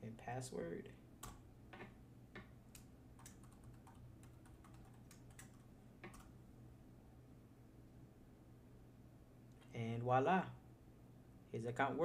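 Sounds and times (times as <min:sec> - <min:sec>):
faint low hum: 0:00.0 - 0:12.0
keyboard typing: 0:01.2 - 0:06.3.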